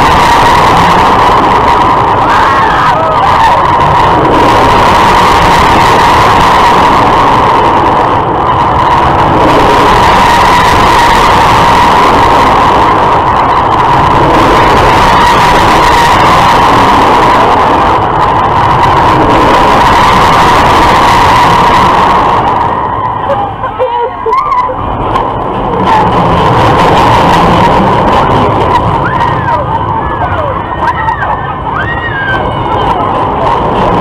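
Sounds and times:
constant whine: 0.0 - 34.0
rush of wind and running noise: 0.0 - 34.0.

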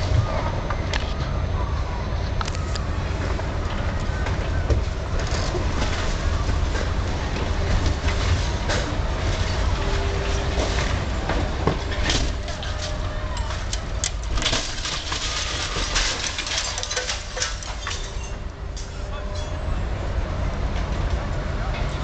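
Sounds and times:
excavator engine rumble: 0.0 - 22.0
debris cracking and crunching: 11.8 - 19.0.

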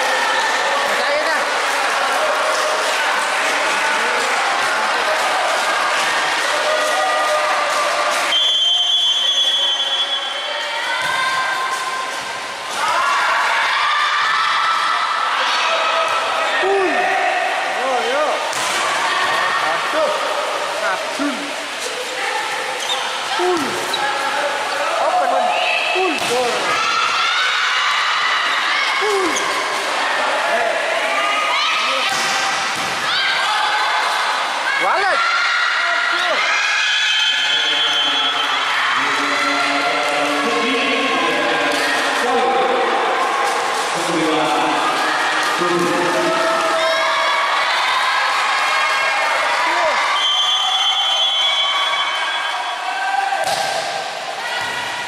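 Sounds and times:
people shouting and calling: 0.0 - 55.0
referee's whistle blowing: 8.3 - 10.5, 37.1 - 38.6, 50.1 - 52.8
volleyball struck and bouncing: 53.4 - 54.0.

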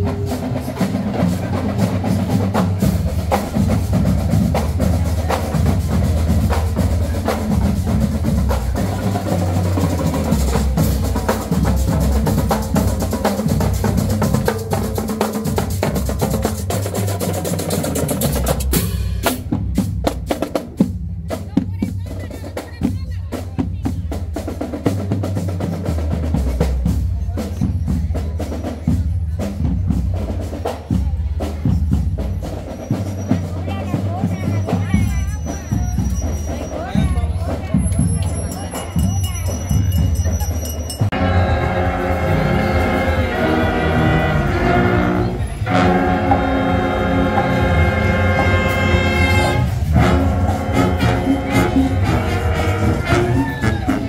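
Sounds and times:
snare and bass drums: 0.0 - 54.0
low brass: 41.2 - 54.0.

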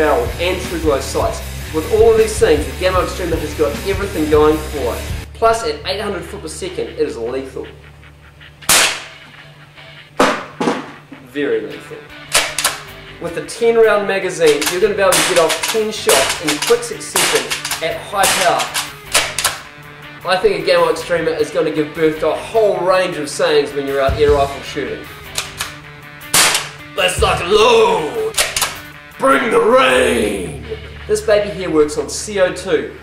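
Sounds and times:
background music: 0.0 - 33.0
sharp shot-like crack: 8.7 - 9.1, 12.3 - 12.8, 17.2 - 19.6, 26.3 - 26.8
air rifle shots cracking: 8.7 - 9.2, 12.3 - 12.9, 14.5 - 19.7, 25.4 - 26.9, 28.3 - 28.9.

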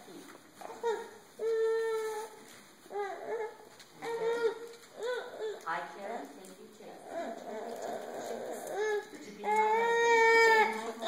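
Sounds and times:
high-pitched whining and whimpers: 0.0 - 11.0.

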